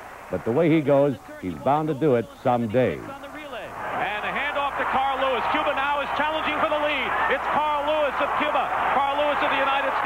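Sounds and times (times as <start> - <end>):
man giving fast commentary: 0.3 - 10.0.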